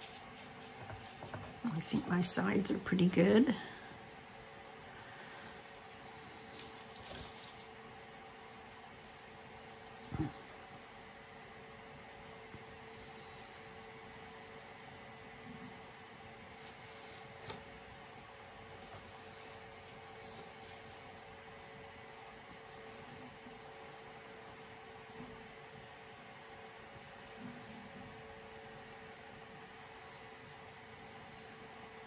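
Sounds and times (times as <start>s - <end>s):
faint room hum: 0.0s - 32.0s.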